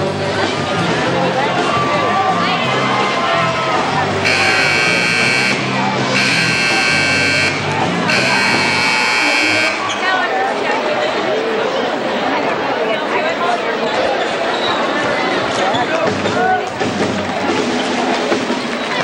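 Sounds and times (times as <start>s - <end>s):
scoreboard buzzer blasts: 4.2s - 9.9s.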